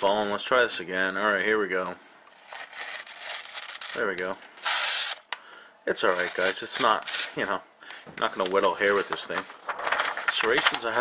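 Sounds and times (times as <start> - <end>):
knife blade slicing paper: 2.4 - 4.0, 4.6 - 5.2.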